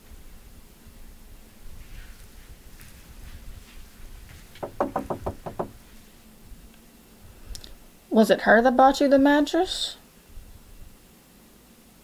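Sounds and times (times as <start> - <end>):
knocking on a door: 4.6 - 5.8.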